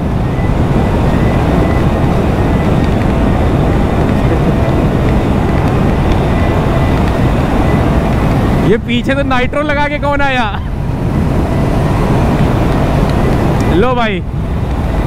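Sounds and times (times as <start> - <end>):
faint steady whine: 0.0 - 15.0
wind rushing over microphone: 0.0 - 15.0.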